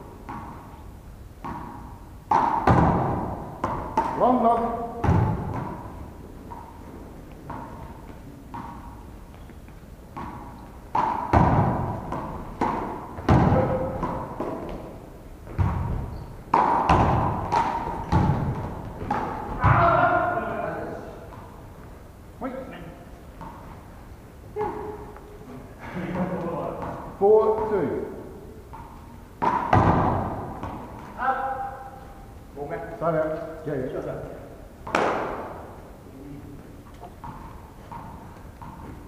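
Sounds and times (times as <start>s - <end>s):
handball smacks echoing: 0.2s - 0.8s, 1.4s - 21.9s, 26.1s - 32.2s, 33.3s - 36.0s, 36.9s - 39.0s.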